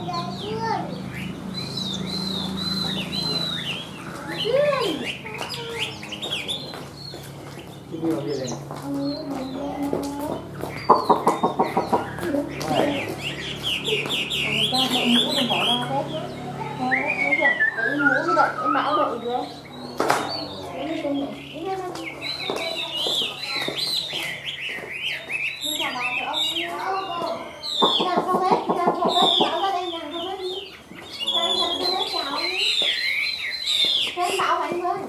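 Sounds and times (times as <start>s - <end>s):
bird singing whistled notes: 1.1s - 7.3s, 16.8s - 28.2s, 29.0s - 34.6s.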